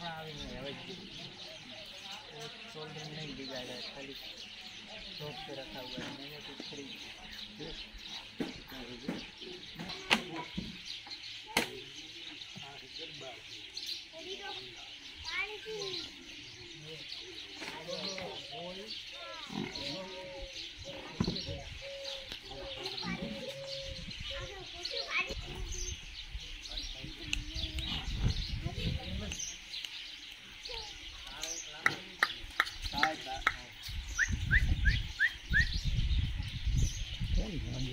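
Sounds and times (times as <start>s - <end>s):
men talking indistinctly: 0.0s - 29.7s, 30.4s - 37.9s
bird chirping: 0.0s - 37.9s.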